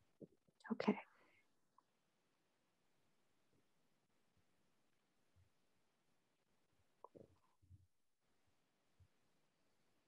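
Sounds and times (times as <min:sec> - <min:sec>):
person whispering: 0:00.6 - 0:01.2.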